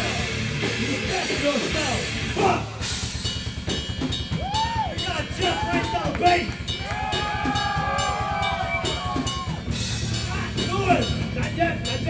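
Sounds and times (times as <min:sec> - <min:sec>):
drum hits: 0:00.0 - 0:12.0
rock band playing live: 0:00.0 - 0:12.0.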